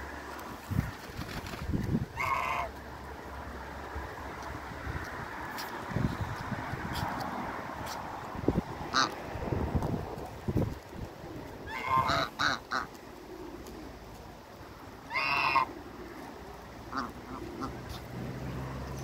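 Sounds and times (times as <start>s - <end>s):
geese honking: 2.2s - 2.8s, 8.9s - 9.2s, 11.6s - 13.0s, 15.1s - 15.8s, 16.9s - 18.1s.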